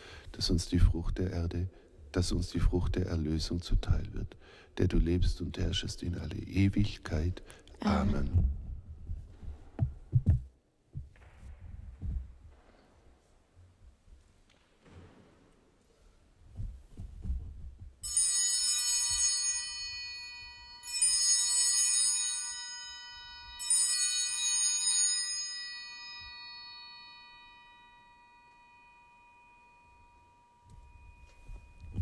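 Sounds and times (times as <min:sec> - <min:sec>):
church altar bell ringing: 0:18.0 - 0:32.0.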